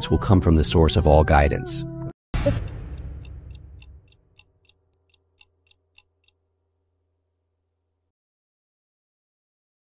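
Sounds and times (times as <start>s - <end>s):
clock-like ticking: 2.4s - 6.4s.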